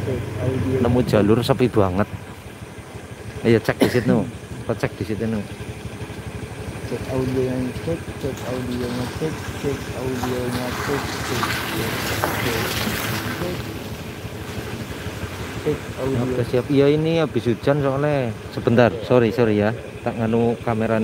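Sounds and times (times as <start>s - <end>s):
motorcycle engine idling: 0.0s - 21.0s
vehicle passing on wet road: 8.3s - 16.7s.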